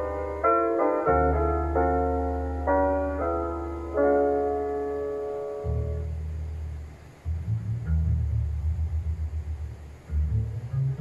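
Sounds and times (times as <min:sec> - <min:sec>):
plucked double bass jazz line: 0:05.6 - 0:11.0.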